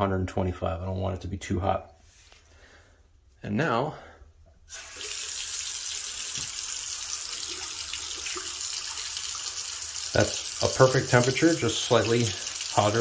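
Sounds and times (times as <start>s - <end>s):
faucet turned on: 4.7s - 13.0s
water running into sink: 4.7s - 13.0s.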